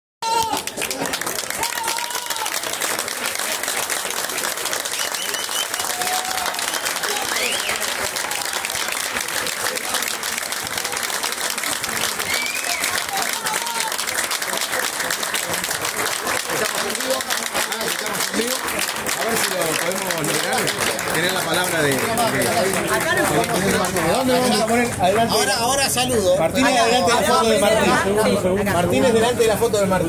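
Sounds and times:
people applauding: 0:00.2 - 0:26.0.

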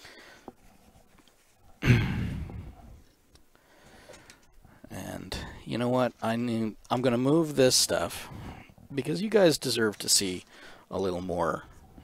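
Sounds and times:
man sighing heavily: 0:01.8 - 0:02.8.

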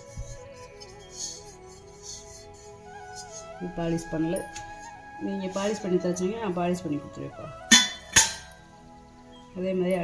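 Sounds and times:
metallic clinks of metal vessels: 0:07.7 - 0:08.6.

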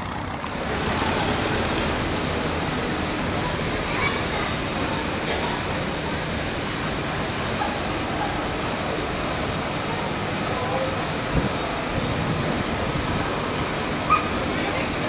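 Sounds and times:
car traffic: 0:00.0 - 0:15.0
tram moving slowly: 0:00.0 - 0:15.0
voices of passers-by: 0:00.0 - 0:15.0.

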